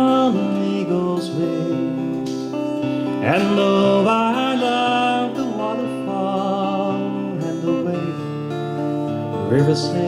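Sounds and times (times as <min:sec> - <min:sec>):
man singing: 0:00.0 - 0:08.7, 0:09.3 - 0:10.0
strummed acoustic guitar: 0:00.0 - 0:10.0.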